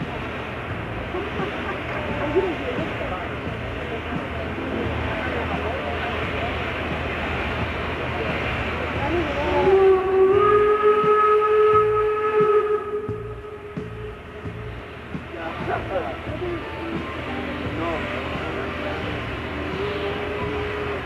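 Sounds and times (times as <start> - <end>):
steam locomotive hissing steam: 0.0 - 21.0
steam whistle: 9.4 - 14.4.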